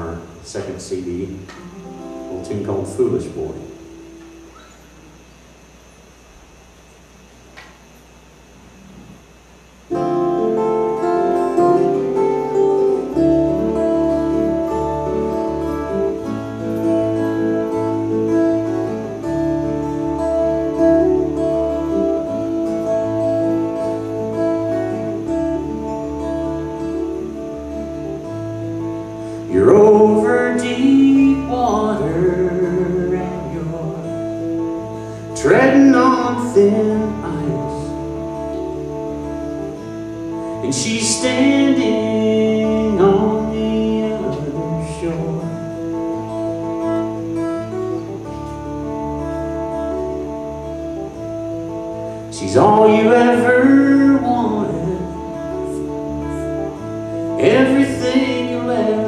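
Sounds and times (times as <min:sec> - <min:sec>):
acoustic guitars and bass: 0:00.0 - 0:59.0
person singing: 0:29.5 - 0:34.4, 0:40.6 - 0:45.8, 0:52.4 - 0:56.5, 0:57.3 - 0:59.0.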